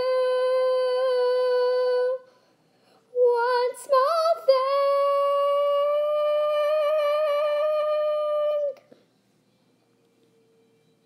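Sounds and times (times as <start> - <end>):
woman singing unaccompanied: 0.0 - 2.3, 3.1 - 8.9.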